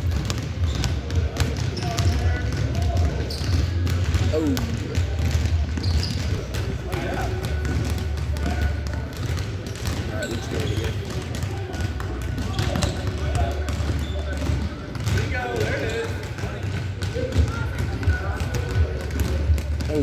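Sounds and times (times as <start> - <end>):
basketballs bouncing on wooden floor: 0.0 - 20.0.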